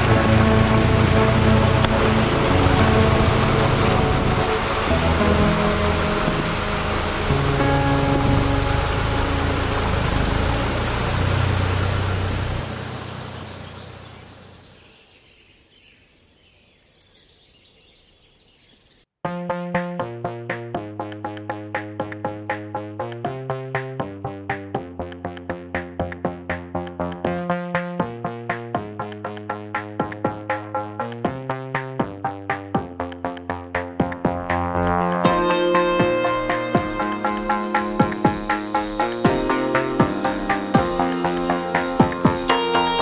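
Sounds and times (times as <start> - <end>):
electronic music with steady beat: 0.0 - 10.6, 19.3 - 43.0
steady rush of noise: 0.0 - 14.3
music with sustained chords: 0.0 - 14.9, 19.3 - 43.0
faint bird chirps: 13.2 - 19.1.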